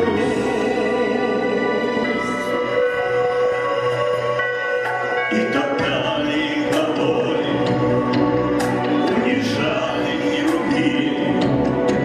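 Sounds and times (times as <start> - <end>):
recorded backing track: 0.0 - 12.0
man singing into microphone: 5.2 - 7.8, 9.0 - 11.5.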